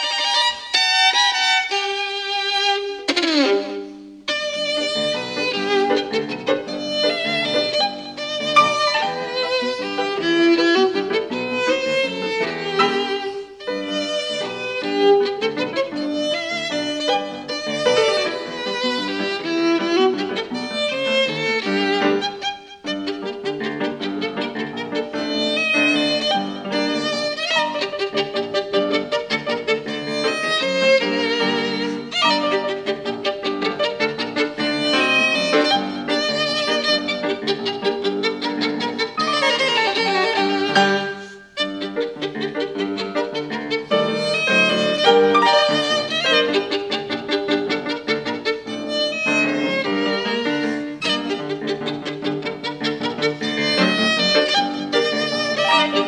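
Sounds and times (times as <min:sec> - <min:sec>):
violin and piano music: 0:00.0 - 0:56.0.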